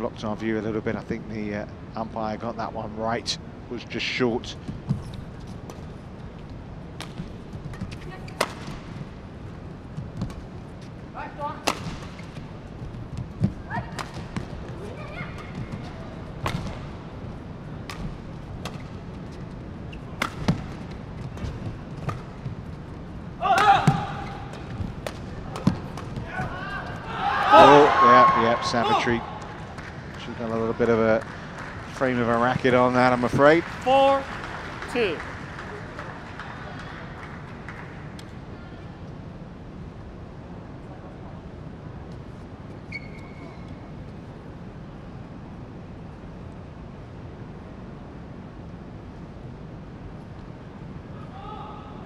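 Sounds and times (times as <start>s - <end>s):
racquets striking shuttlecock: 6.9s - 9.0s, 11.6s - 12.4s, 13.2s - 16.9s, 17.8s - 19.3s, 20.2s - 22.6s, 23.4s - 27.6s
people shouting: 23.4s - 24.5s, 25.5s - 29.4s.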